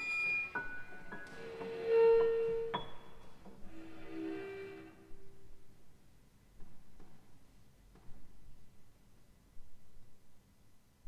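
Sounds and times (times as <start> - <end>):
violin cello and piano notes: 0.0 - 5.6.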